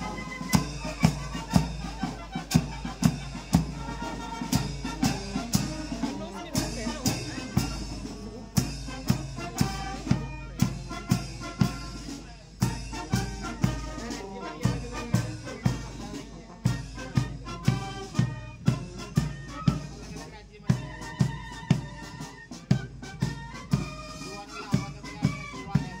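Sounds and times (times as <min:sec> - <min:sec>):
brass instruments sustained notes: 0:00.0 - 0:20.2
bass drum beat: 0:00.0 - 0:24.1.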